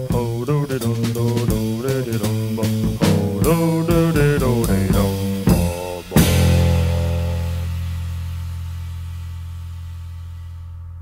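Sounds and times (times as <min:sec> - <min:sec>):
jazz band final chord: 0:02.8 - 0:10.6
deep held bass note: 0:02.8 - 0:11.0.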